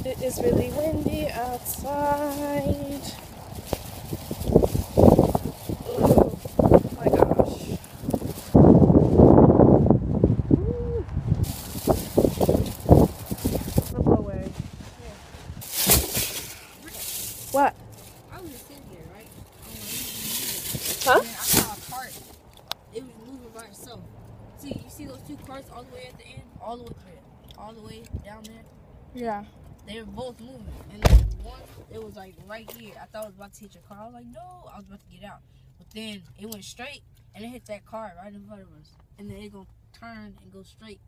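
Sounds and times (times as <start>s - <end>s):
wind buffeting microphone: 0.0s - 16.3s.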